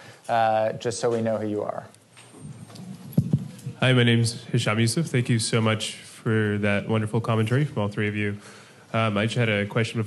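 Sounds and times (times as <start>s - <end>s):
man speaking: 0.3s - 2.0s, 3.5s - 10.0s.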